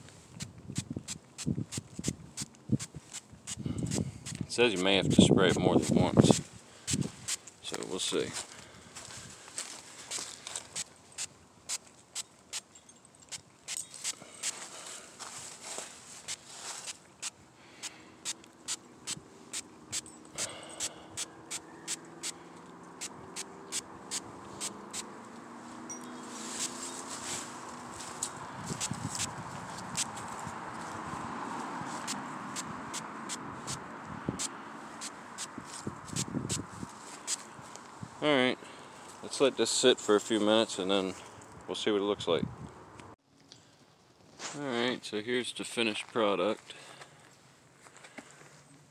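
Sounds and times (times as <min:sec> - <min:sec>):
spray bottle spritzing: 0:00.4 - 0:04.5, 0:05.8 - 0:07.5, 0:10.1 - 0:14.8, 0:16.2 - 0:22.4, 0:23.0 - 0:25.1, 0:28.2 - 0:30.2, 0:34.4 - 0:36.6.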